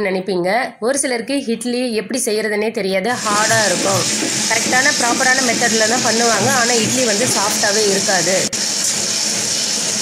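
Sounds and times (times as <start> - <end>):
person talking: 0.0 - 8.6
wet grinder hissing: 3.1 - 10.0.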